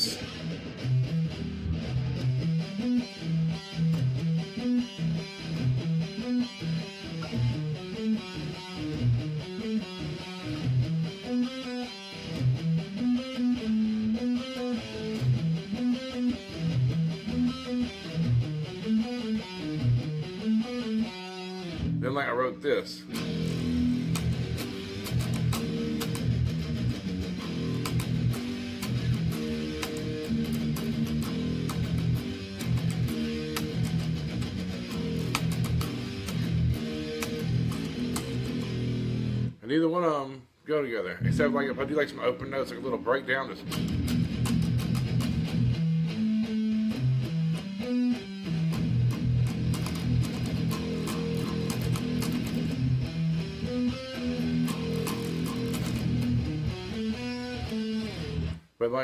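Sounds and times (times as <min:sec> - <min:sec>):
electric guitar metal riff: 0:00.0 - 0:39.6, 0:41.2 - 0:59.0.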